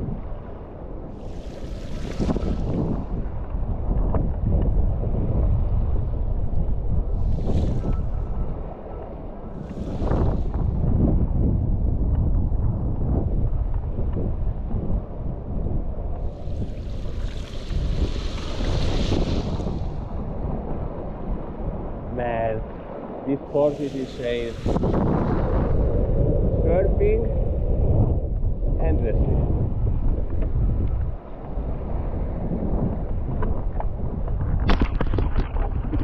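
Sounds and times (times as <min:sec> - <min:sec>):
choppy water washing: 0:00.0 - 0:06.4, 0:07.0 - 0:08.8, 0:16.1 - 0:26.6, 0:29.5 - 0:36.0
strong wind buffeting microphone: 0:00.0 - 0:36.0.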